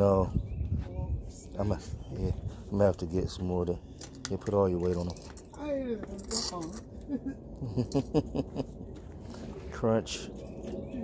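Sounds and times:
person laughing: 0:06.9 - 0:08.9.

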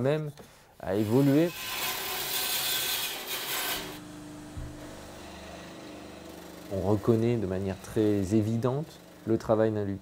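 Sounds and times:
bandsaw cutting wood: 0:00.9 - 0:09.8
bandsaw humming: 0:00.9 - 0:10.0
low thump: 0:04.5 - 0:05.0.

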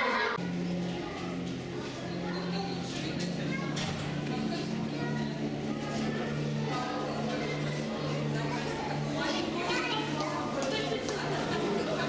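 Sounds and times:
children's voices chattering: 0:00.0 - 0:12.0.

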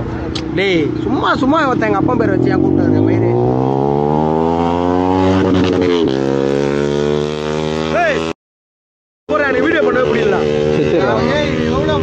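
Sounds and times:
voices: 0:00.3 - 0:03.9, 0:09.3 - 0:12.0.

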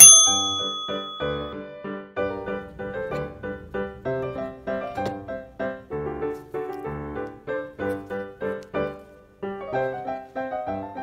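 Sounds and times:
bright bell ding: 0:00.0 - 0:01.6.

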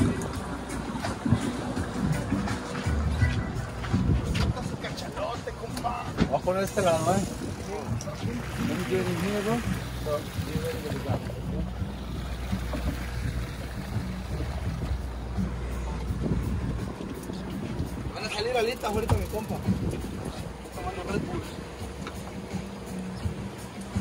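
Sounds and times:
boat engine droning: 0:00.0 - 0:24.0.

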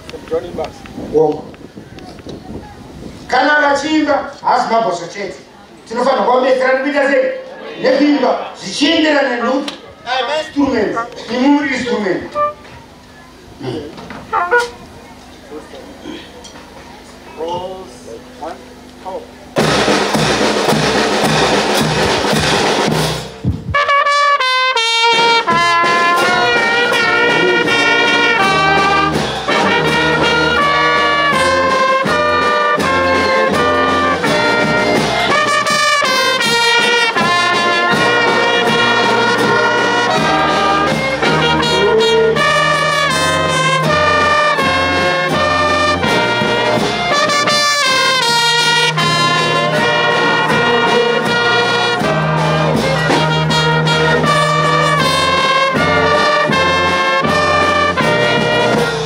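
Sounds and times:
brass band playing melody: 0:10.2 - 0:13.0, 0:14.2 - 0:14.9, 0:19.6 - 0:59.0
bass drum beat: 0:19.6 - 0:24.0, 0:25.1 - 0:59.0
loud drumming with clatter: 0:19.6 - 0:59.0.

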